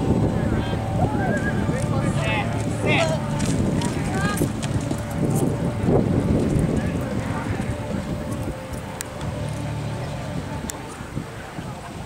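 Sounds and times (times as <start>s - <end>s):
horse hoofbeats on dirt: 2.4s - 8.5s.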